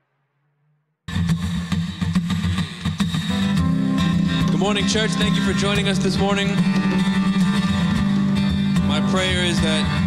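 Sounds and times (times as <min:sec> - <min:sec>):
conga drums: 0:01.1 - 0:03.6
acoustic guitar strumming: 0:01.1 - 0:10.0.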